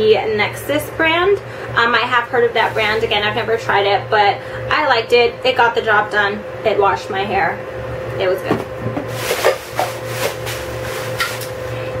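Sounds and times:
bag rustling: 9.1s - 11.7s.

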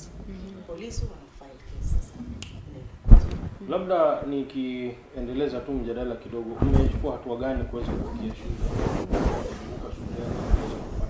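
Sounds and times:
person speaking: 7.6s - 11.0s.

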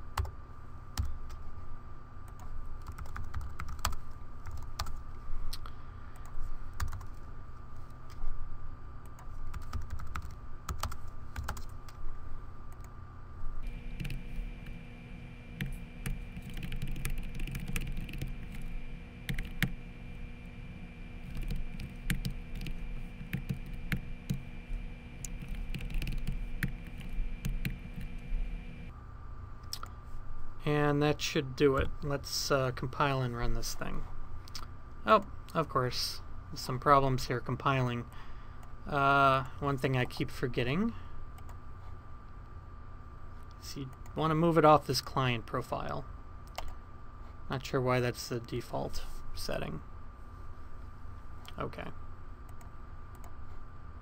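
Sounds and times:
typing on computer keyboard: 2.4s - 5.0s, 9.2s - 11.7s, 15.6s - 18.6s, 21.3s - 24.4s, 25.3s - 28.0s.

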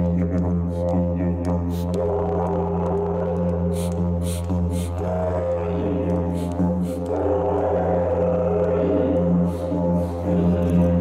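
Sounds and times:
didgeridoo drone: 0.0s - 11.0s.

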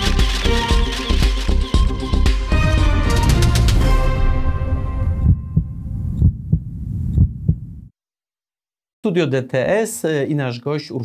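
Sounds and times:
theme music with deep hum: 0.0s - 6.2s.

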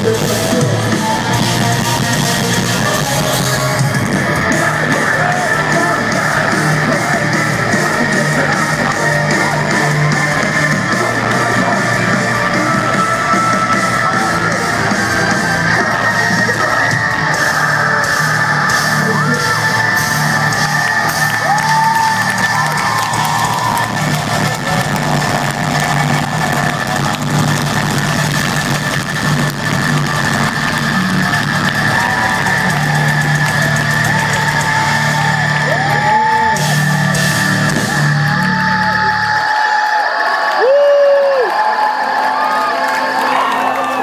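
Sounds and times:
metal band playing live: 0.0s - 40.0s
crowd yelling and cheering: 0.0s - 44.0s.

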